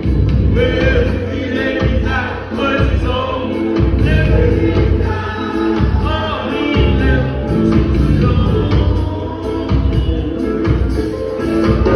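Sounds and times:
live reggae band: 0:00.0 - 0:11.9
man singing into microphone: 0:00.5 - 0:11.9.

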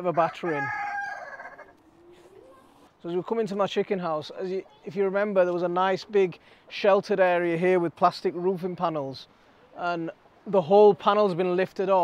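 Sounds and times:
rooster crowing: 0:00.2 - 0:01.7.

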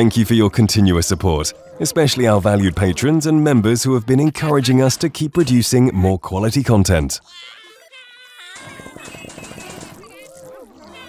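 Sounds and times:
squeaky cartoon character voices: 0:00.0 - 0:11.0
toy blaster rattling: 0:08.5 - 0:10.3.

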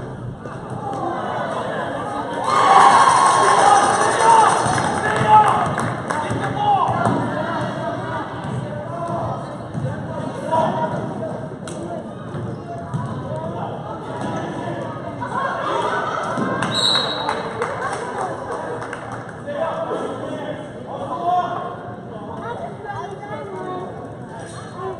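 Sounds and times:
spectators shouting and cheering: 0:00.7 - 0:07.7.

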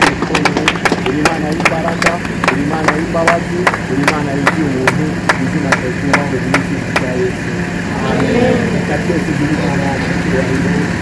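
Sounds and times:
rhythmic hand clapping: 0:00.0 - 0:07.2
vehicle engine idling: 0:00.0 - 0:11.0
children and adults singing: 0:07.9 - 0:08.9.

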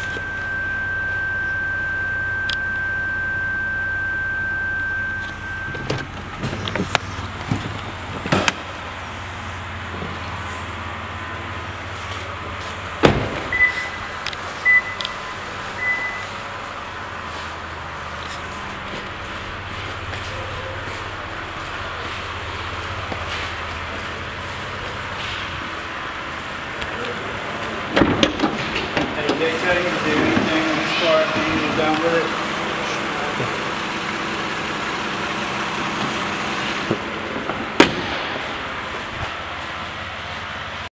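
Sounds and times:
short high-pitched beeps: 0:00.0 - 0:05.9, 0:13.5 - 0:15.2, 0:15.8 - 0:16.4
steady low hum: 0:00.0 - 0:40.8
car engine idling: 0:00.0 - 0:40.9
car door shutting: 0:05.2 - 0:08.7, 0:13.0 - 0:14.0, 0:27.8 - 0:32.0.

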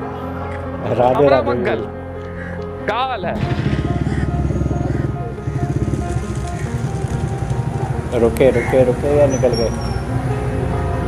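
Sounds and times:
motorcycle engine running: 0:03.4 - 0:10.7.

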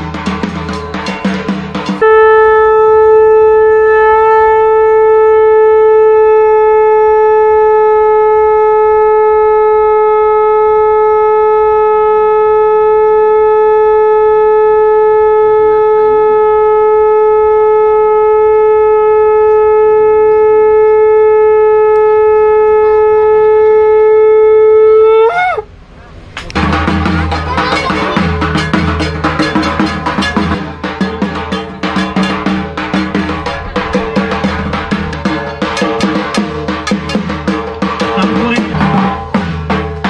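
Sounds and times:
conch shell blown: 0:01.8 - 0:25.7.

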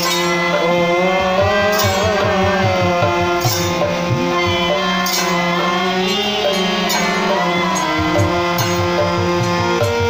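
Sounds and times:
sung melody over drone: 0:00.0 - 0:10.0.

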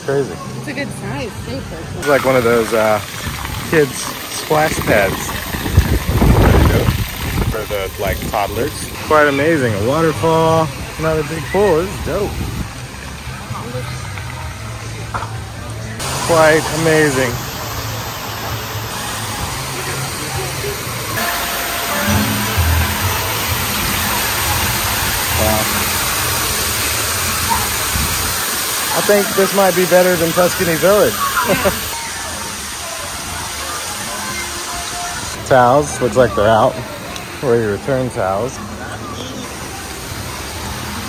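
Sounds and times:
waterfall rushing: 0:02.0 - 0:12.9, 0:16.0 - 0:36.2
music playing: 0:16.0 - 0:27.0.

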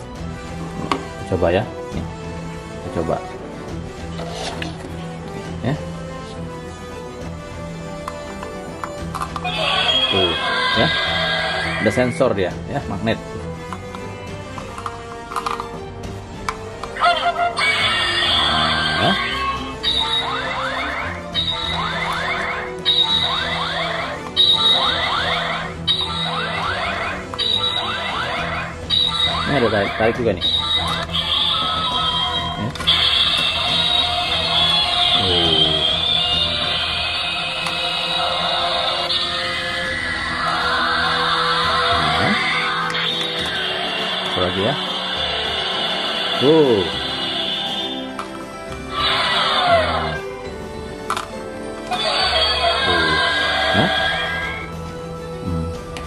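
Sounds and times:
toy rising electronic sweep: 0:09.4 - 0:12.1, 0:17.6 - 0:48.2, 0:48.9 - 0:50.2, 0:51.9 - 0:54.7.

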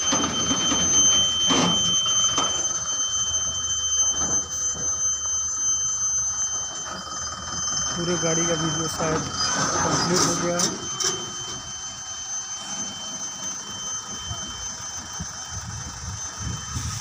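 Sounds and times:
steady high-pitched tone: 0:00.0 - 0:17.0.

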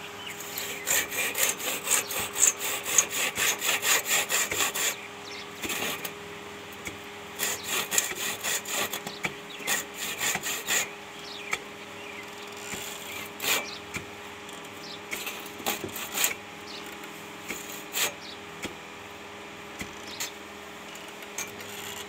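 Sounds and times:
hand saw cutting branch: 0:00.4 - 0:05.0, 0:05.6 - 0:11.7, 0:12.4 - 0:18.8, 0:19.7 - 0:20.4.

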